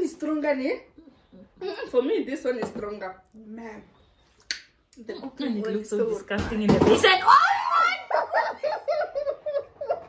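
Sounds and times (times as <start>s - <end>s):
woman laughing: 7.6s - 10.0s.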